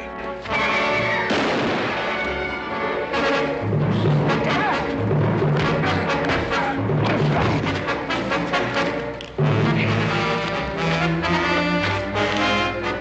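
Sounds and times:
orchestral score: 0.0 - 13.0
low booming notes: 1.2 - 7.7.

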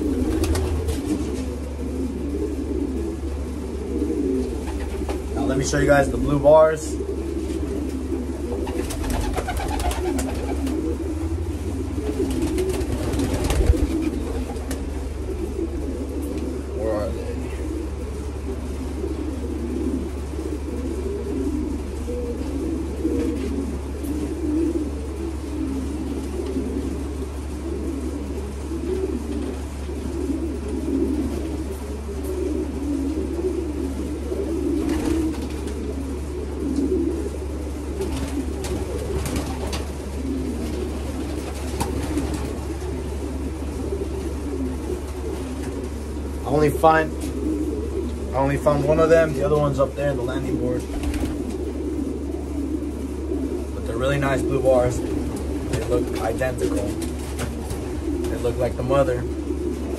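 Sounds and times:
low hum: 0.0 - 25.6
pigeons cooing: 0.0 - 59.9.

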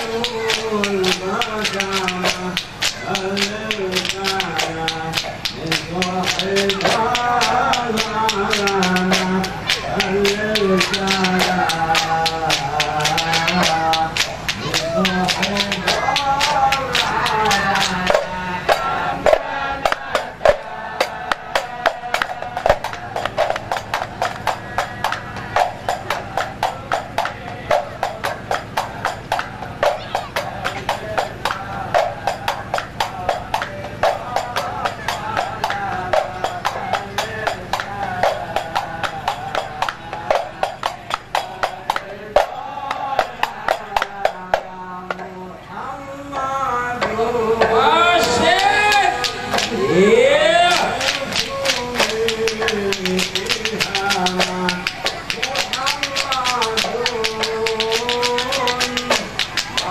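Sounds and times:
handclaps: 0.0 - 45.3, 47.6 - 59.9
frame drums: 0.0 - 45.4, 47.0 - 59.9
men singing together: 0.0 - 59.9.

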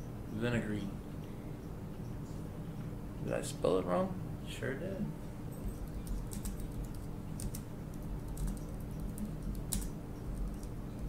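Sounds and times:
steady low hum: 0.0 - 11.0
keyboard typing clicks: 5.8 - 11.0.

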